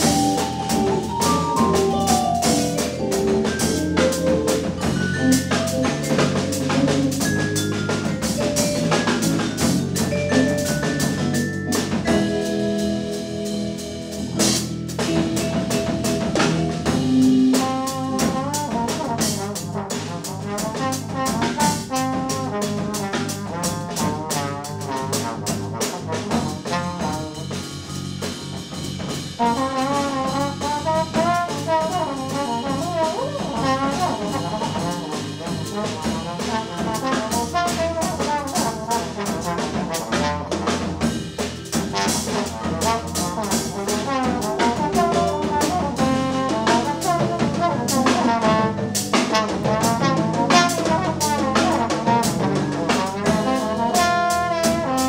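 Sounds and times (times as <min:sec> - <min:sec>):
busy drum kit and cymbals: 0:00.0 - 0:55.0.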